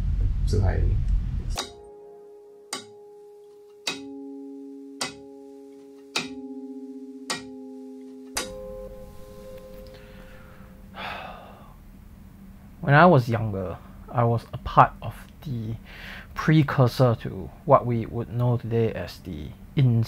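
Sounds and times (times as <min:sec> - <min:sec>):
slow ringing instrument notes: 0:01.6 - 0:11.7
faint soft noise: 0:08.0 - 0:15.6.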